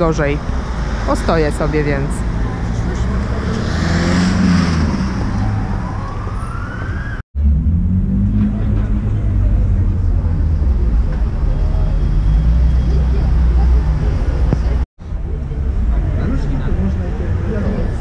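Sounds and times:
street traffic rumble: 0:00.0 - 0:18.0
rising siren-like tone: 0:04.8 - 0:08.2.

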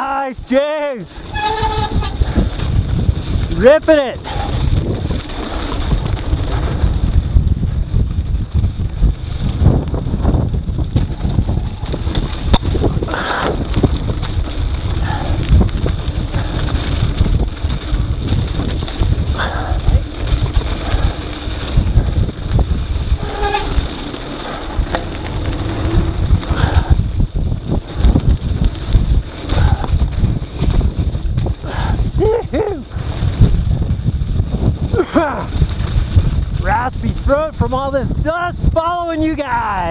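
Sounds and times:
bike rumbling and rattling: 0:00.0 - 0:39.9
wind buffeting microphone: 0:00.0 - 0:39.9.

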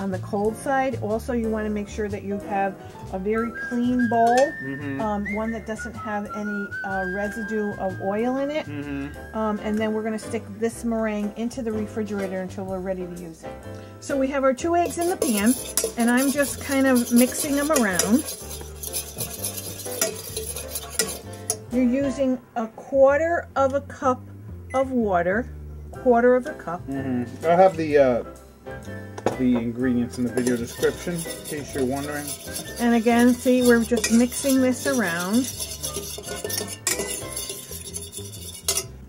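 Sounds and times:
fork clinking against metal pan: 0:14.8 - 0:21.7, 0:30.2 - 0:39.0.

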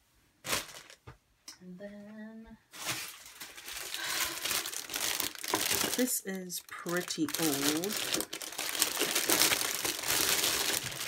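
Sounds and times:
plastic bag crinkling: 0:00.4 - 0:01.0, 0:02.7 - 0:11.0.

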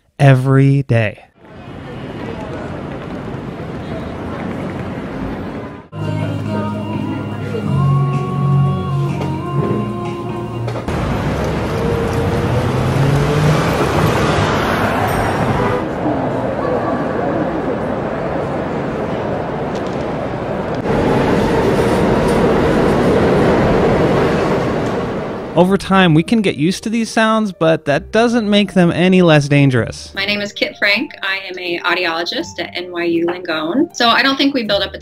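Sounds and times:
subway train in station: 0:01.4 - 0:26.1
busy train station noise: 0:01.4 - 0:26.3
cafe background music: 0:05.9 - 0:10.9, 0:25.6 - 0:35.0.

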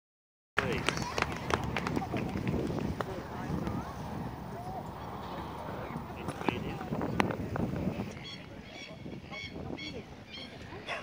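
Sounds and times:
people talking outdoors: 0:00.6 - 0:11.0.

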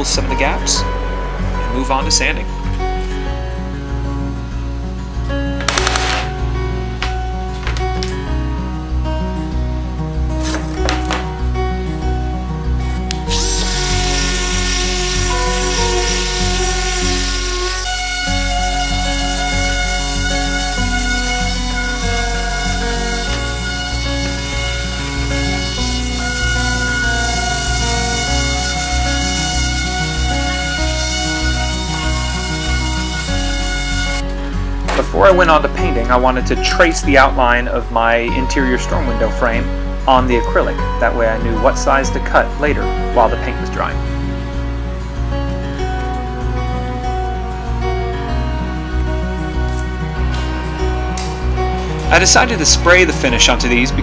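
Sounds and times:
electric orbital sander on wood: 0:13.2 - 0:34.2
background music with steady beat: 0:38.2 - 0:52.7.

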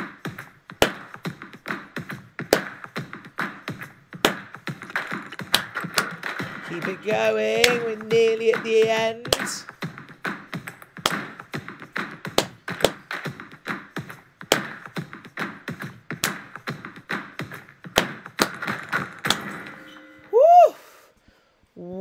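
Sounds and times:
faint backing music: 0:00.0 - 0:20.5
sharp claps and taps: 0:00.3 - 0:19.6
rising and falling pitched sound: 0:19.2 - 0:21.1.

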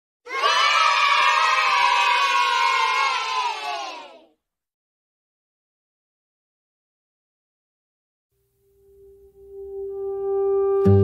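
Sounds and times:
children cheering and shouting: 0:00.3 - 0:04.4.

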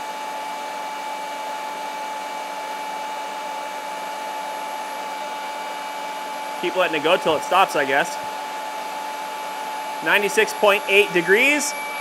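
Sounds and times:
polisher motor whine: 0:01.6 - 0:12.0.

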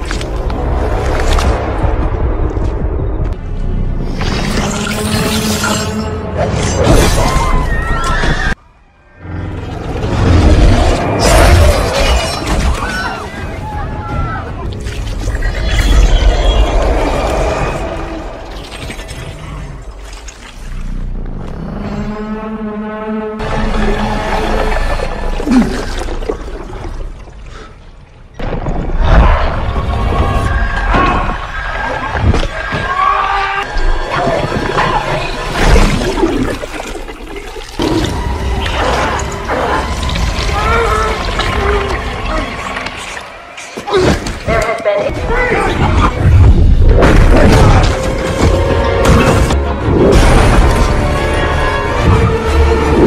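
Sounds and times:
wet gushing gurgling rush: 0:34.9 - 0:43.3.

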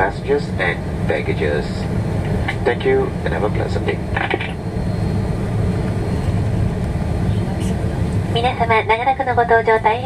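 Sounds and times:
airplane cabin low rumble: 0:00.0 - 0:10.0.

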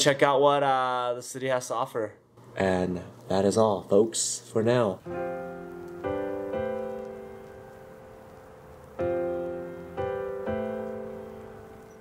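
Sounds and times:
piano chords: 0:05.0 - 0:12.0.

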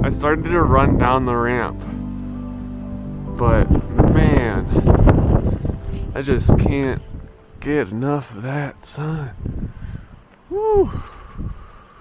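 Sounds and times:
wind gusting against microphone: 0:00.0 - 0:12.0
high-pitched vocal ooh: 0:10.5 - 0:11.1.

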